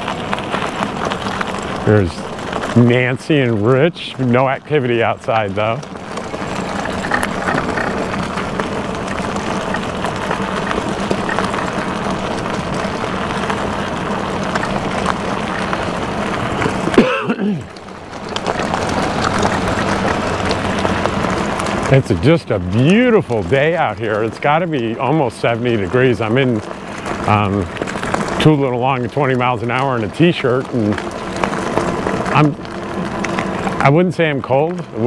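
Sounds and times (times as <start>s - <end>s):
tyres rolling over gravel: 0.0s - 35.0s.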